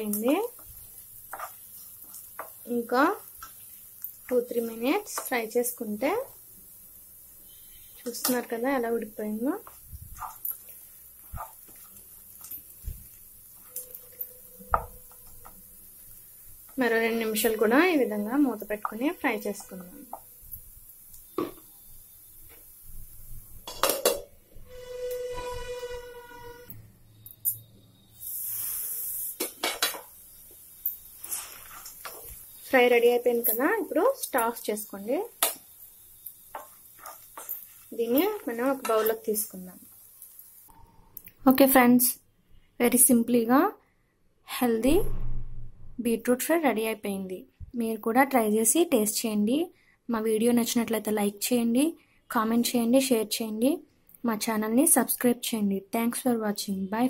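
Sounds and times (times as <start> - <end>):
wooden spatula scraping a pan: 0.4 - 2.6, 9.6 - 15.5, 24.7 - 26.7, 31.2 - 32.4.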